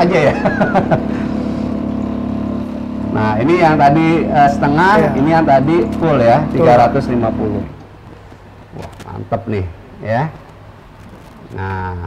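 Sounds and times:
filling machine pump humming: 0:00.0 - 0:08.3.

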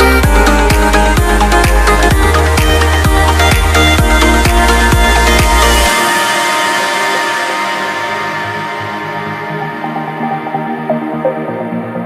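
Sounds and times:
sustained synth chords: 0:00.0 - 0:12.0.

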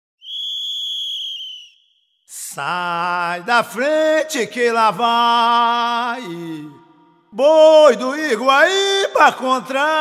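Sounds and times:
long whistle blast: 0:00.2 - 0:02.1.

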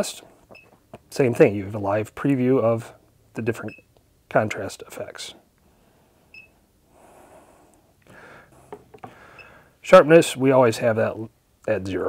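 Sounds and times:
soft breath: 0:05.6 - 0:09.8.

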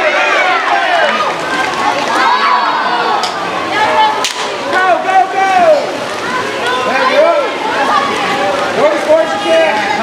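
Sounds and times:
people shouting: 0:00.0 - 0:10.0
sharp crack: 0:04.2 - 0:04.6.

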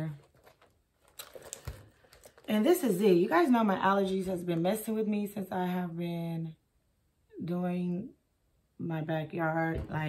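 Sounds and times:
bag clicks and rustles: 0:00.0 - 0:02.6.

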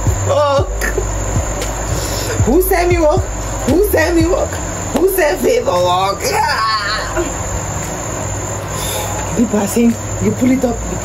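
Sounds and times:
constant high-pitched tone: 0:00.0 - 0:11.0
even hiss: 0:00.0 - 0:11.0
low hum: 0:00.0 - 0:11.0.

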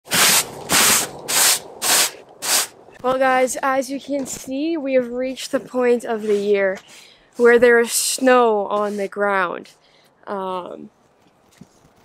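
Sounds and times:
brush sweeping snow off fabric: 0:00.1 - 0:02.7, 0:06.2 - 0:06.6.

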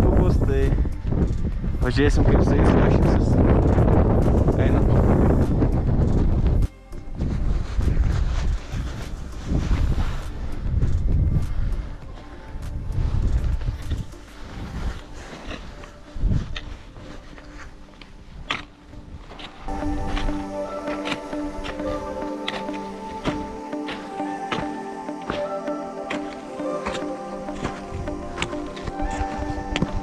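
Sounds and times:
wind buffeting microphone: 0:00.0 - 0:17.1
background music: 0:00.0 - 0:30.0
wind gusts: 0:00.0 - 0:30.0.

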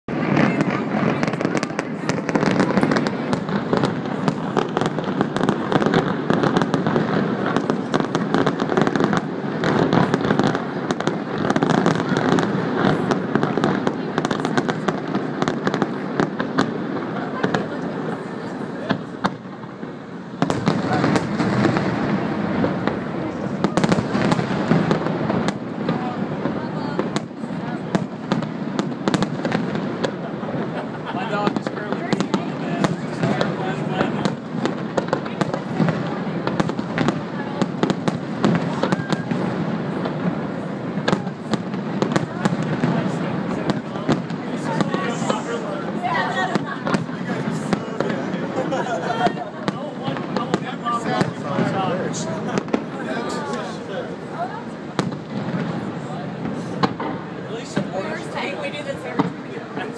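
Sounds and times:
fireworks bursting and crackling: 0:00.1 - 0:59.9.

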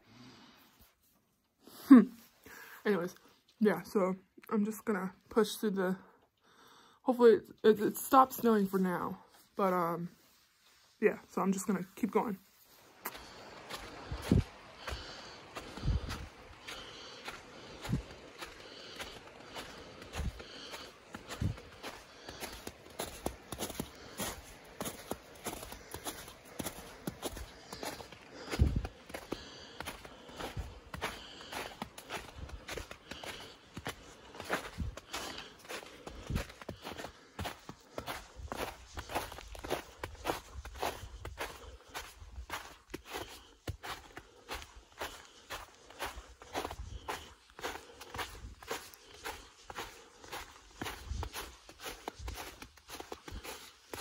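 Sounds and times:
footsteps in snow: 0:08.2 - 0:54.0.

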